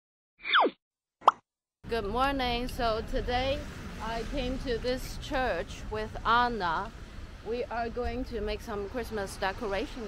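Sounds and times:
cartoon downward swoop: 0.4s - 0.8s.

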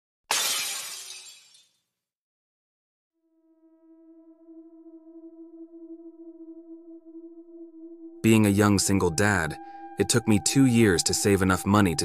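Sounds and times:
glass shattering: 0.3s - 1.8s.

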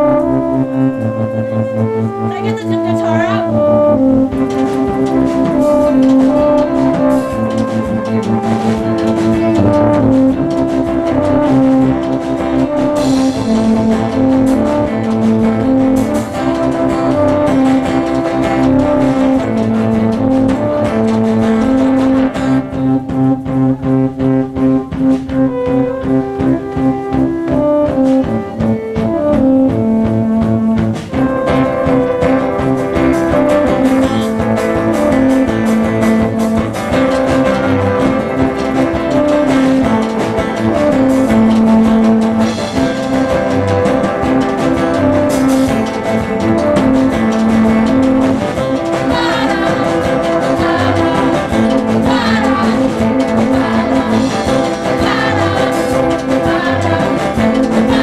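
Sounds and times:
live band keyboards and guitars: 0.0s - 58.0s.

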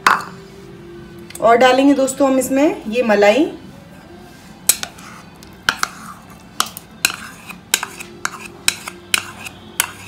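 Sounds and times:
metal spoon scraping ceramic bowl: 4.7s - 10.0s.

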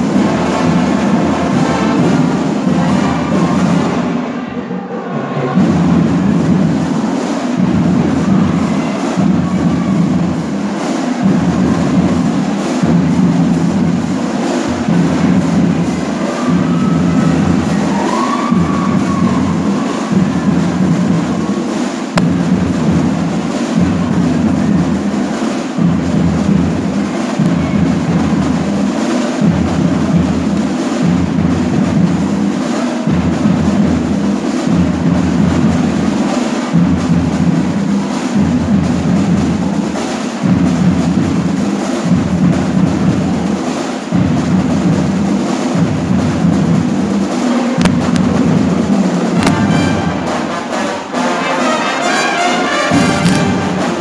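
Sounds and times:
snare and bass drums marching beat: 0.0s - 4.2s, 5.6s - 54.0s
marching band playing: 0.0s - 4.4s, 5.1s - 54.0s.

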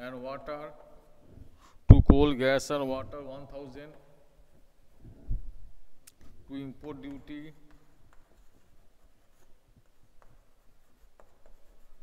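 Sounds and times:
chalk tapping on board: 7.0s - 12.0s
chalk scratching on blackboard: 7.7s - 12.0s.

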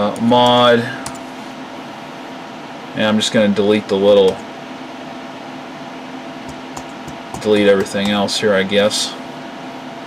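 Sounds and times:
fan hum: 0.0s - 10.0s.

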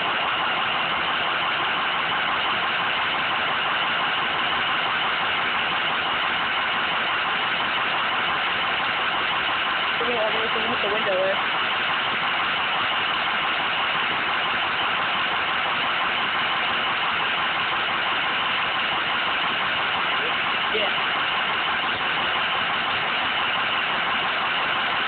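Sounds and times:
car engine idling: 0.0s - 25.0s.

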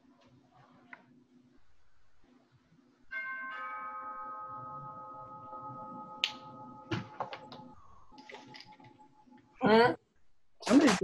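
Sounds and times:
bell-like chime ringing: 3.1s - 9.5s.

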